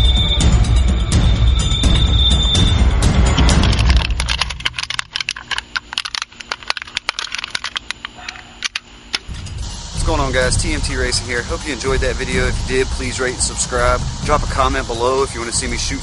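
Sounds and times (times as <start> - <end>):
dramatic background music: 0.0 - 4.2, 9.3 - 15.8
crackling clicks from a can: 3.4 - 9.4.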